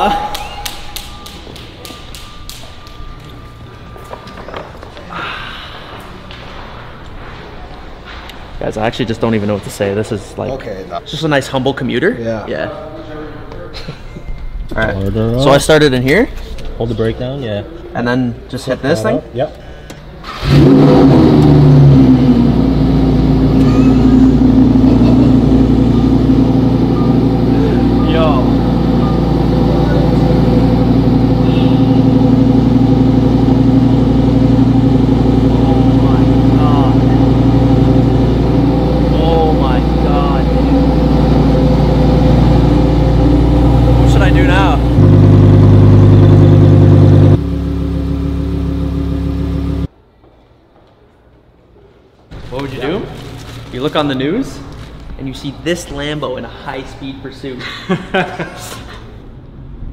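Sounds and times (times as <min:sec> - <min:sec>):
car engine idling: 0:20.5 - 0:49.9.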